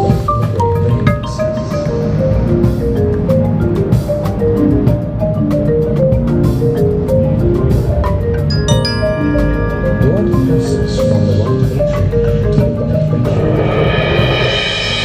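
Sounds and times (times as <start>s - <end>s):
marimba played with mallets: 0.0s - 14.6s
low ensemble sound: 0.0s - 15.0s.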